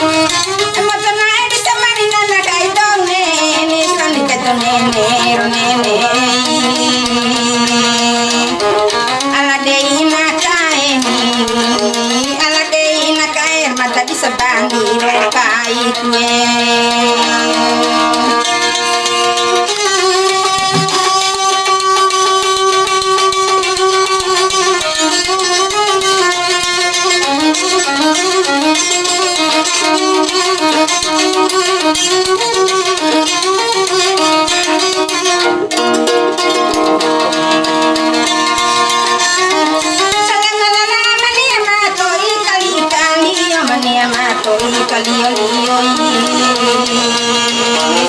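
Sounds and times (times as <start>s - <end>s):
plucked lute: 0.0s - 48.0s
violin melody: 0.0s - 48.0s.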